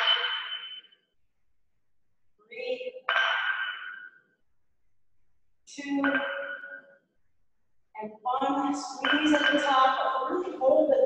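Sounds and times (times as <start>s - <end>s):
metallic clink of dumbbells: 0.0s - 0.9s.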